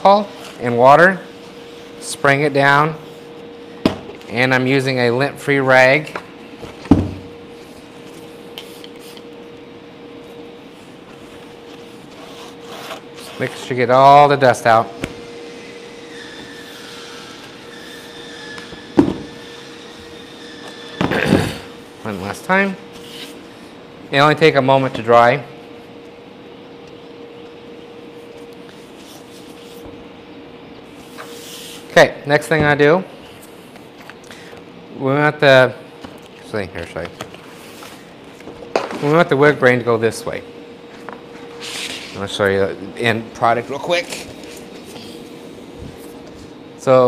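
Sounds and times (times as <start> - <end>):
faint steady hum: 0.0 - 47.0.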